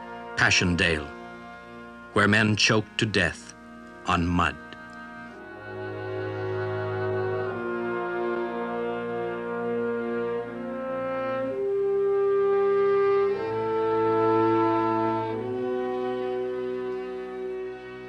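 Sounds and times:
orchestral brass chords: 0.0 - 18.0.

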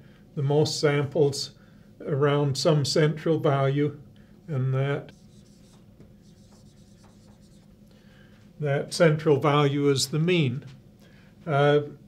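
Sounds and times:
marker rubbing on whiteboard: 5.1 - 7.7.

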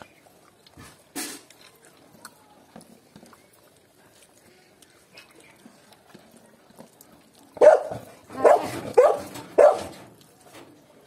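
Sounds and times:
dog barking: 7.6 - 10.0.

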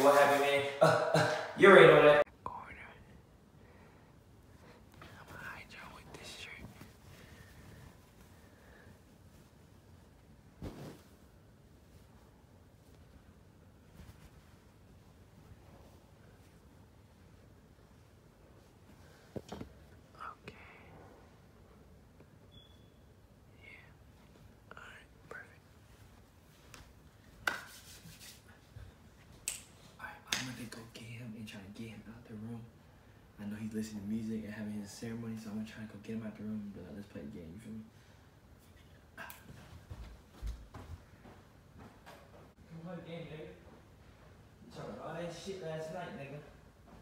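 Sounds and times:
man whispering: 2.2 - 3.3, 5.0 - 7.0, 20.1 - 21.1, 23.5 - 25.8, 30.0 - 32.6.

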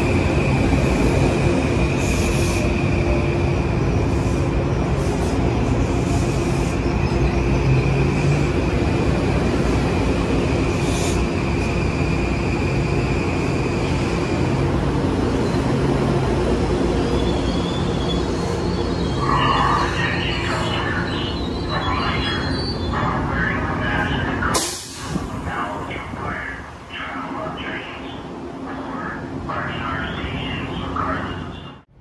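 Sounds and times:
train rumbling and humming: 0.0 - 32.0.

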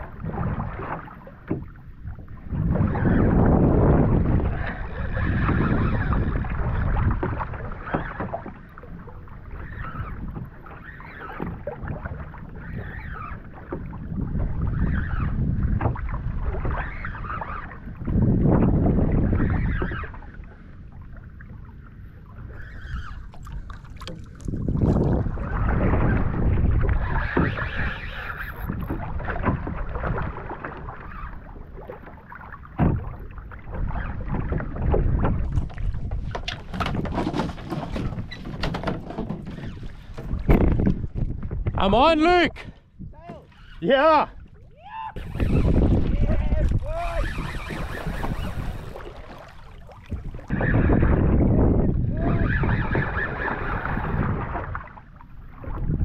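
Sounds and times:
wind buffeting microphone: 0.0 - 31.9, 32.7 - 56.0
water splashing around kayak: 0.0 - 56.0.

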